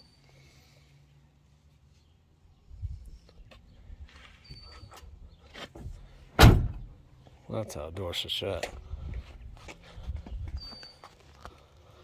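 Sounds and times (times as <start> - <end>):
car door shutting thud: 6.4 - 6.9.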